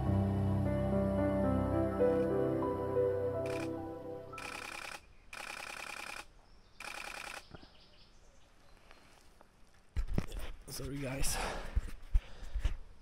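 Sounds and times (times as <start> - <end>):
background music: 0.0 - 4.5
camera shutter bursts: 3.4 - 7.5.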